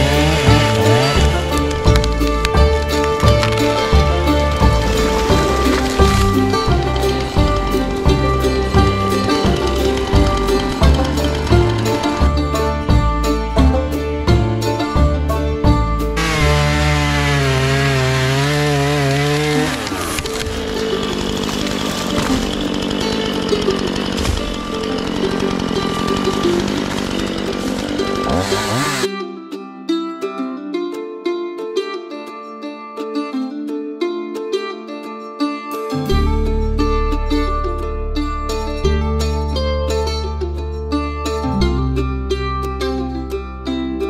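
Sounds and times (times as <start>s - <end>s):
chainsaw cutting into tree trunk: 0.0s - 12.2s, 16.2s - 29.1s
background music with plucked strings: 0.0s - 44.0s.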